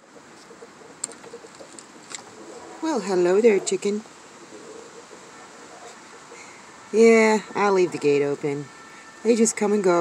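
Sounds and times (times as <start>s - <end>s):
hen clucking softly: 0.0s - 6.7s.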